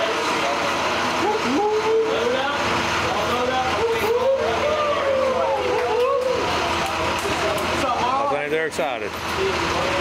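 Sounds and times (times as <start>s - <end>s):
bus engine idling: 0.0s - 10.0s
young voices chattering: 0.0s - 10.0s.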